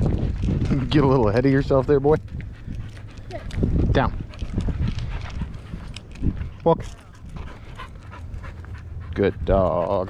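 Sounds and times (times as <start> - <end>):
dog panting quickly: 0.0 - 10.0.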